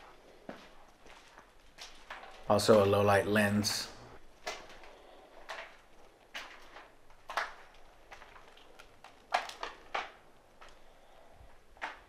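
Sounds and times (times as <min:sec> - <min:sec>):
footsteps crunching on gritty floor: 0:00.0 - 0:03.7.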